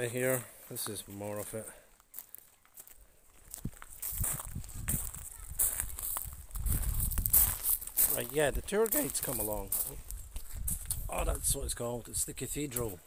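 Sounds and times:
footsteps on gravel: 0.1s - 11.3s.

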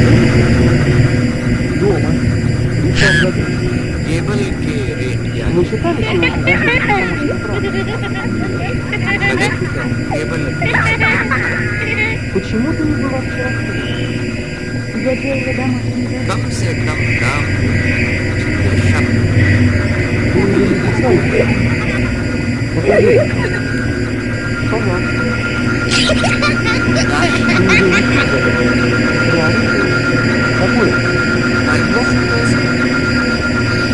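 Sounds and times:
hum tones: 0.0s - 33.9s
low drone: 0.0s - 33.9s
warbling voice-like fragments: 0.0s - 33.9s.

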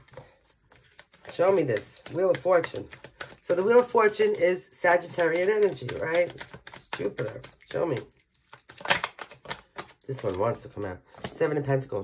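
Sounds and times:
cards being shuffled: 0.0s - 11.6s.

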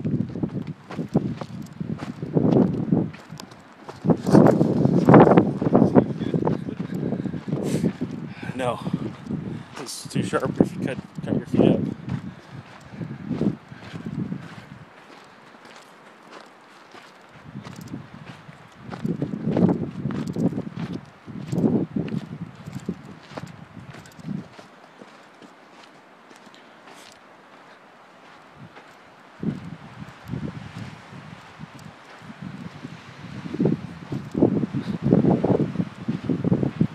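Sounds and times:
footsteps crunching on cinder: 0.0s - 36.9s.

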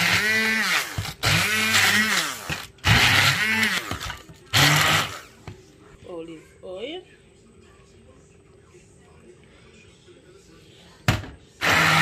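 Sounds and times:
stick blender motor: 0.0s - 5.3s, 11.6s - 12.0s.

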